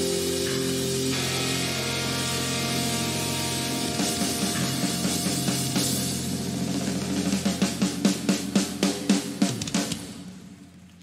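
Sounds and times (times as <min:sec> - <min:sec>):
hard rock band chord ringing: 0:00.0 - 0:09.3
steady hiss: 0:00.0 - 0:11.0.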